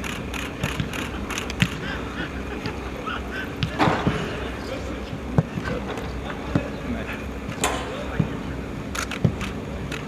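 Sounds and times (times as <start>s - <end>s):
murmur of players' voices: 0.0s - 10.0s.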